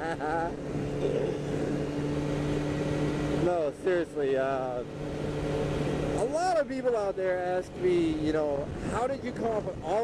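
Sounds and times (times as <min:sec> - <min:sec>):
person laughing: 0:00.0 - 0:01.6
motorcycle engine cruising: 0:00.0 - 0:10.0
wind rushing over microphone: 0:07.5 - 0:10.0.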